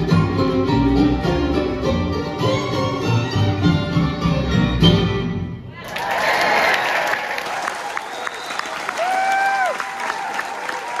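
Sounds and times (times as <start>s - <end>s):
audience applauding and cheering: 5.7s - 11.0s
loud whistle from crowd: 7.9s - 9.0s.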